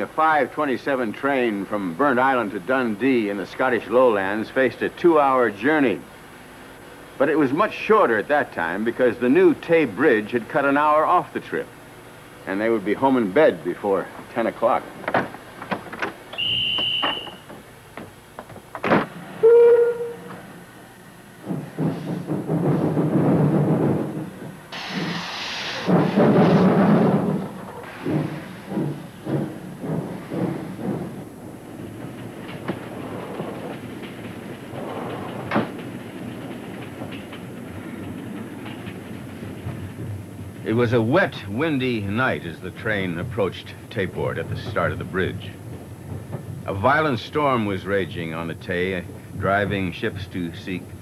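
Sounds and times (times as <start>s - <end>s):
train wheels clattering on rails: 12.5s - 51.0s
low whistle blast: 16.4s - 17.4s, 19.4s - 20.3s
shrill train whistle: 16.4s - 17.4s, 19.4s - 20.4s
sharp slam: 24.7s - 28.7s.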